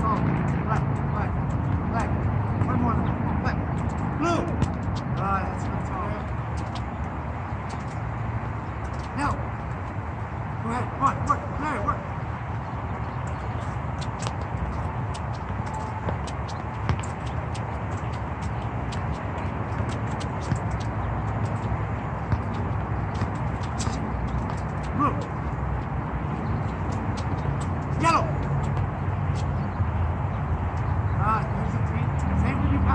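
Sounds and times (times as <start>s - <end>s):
soccer ball tapping on hard court: 0.0s - 7.0s, 13.2s - 29.5s
shoe footsteps: 0.0s - 32.9s.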